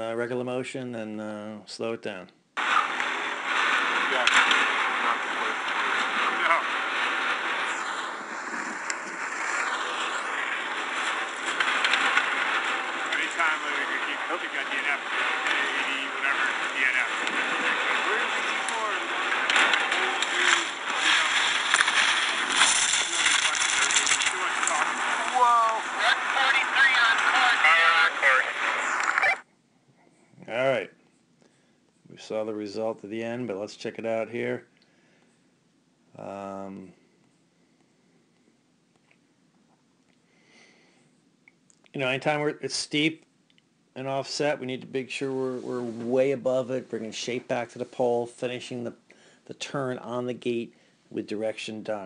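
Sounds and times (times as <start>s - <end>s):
steady outdoor hiss: 2.6s - 29.4s
people's voices and shouts: 23.2s - 29.4s.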